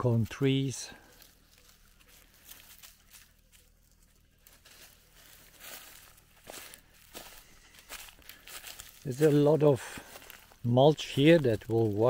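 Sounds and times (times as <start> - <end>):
footsteps crunching on dry leaves: 0.0 - 12.0.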